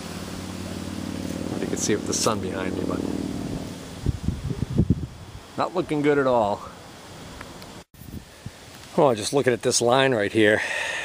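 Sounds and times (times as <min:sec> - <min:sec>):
wind buffeting microphone: 0:01.4 - 0:05.5.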